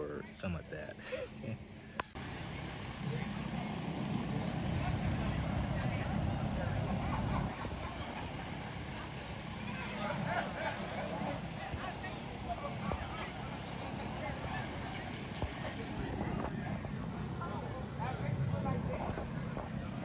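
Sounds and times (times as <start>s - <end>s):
low steady rumble: 0.0s - 20.0s
people chattering: 0.0s - 20.0s
man laughing: 0.9s - 1.7s.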